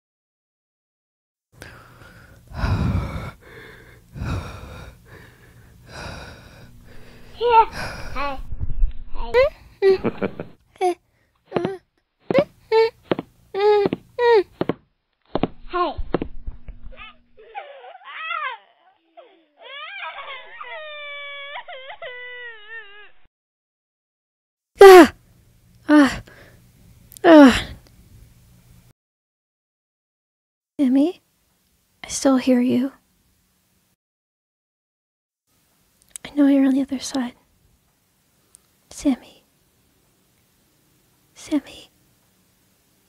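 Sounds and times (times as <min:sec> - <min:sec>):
person breathing heavily in a mask: 0:01.6 - 0:08.3
child wailing cry: 0:17.0 - 0:23.3.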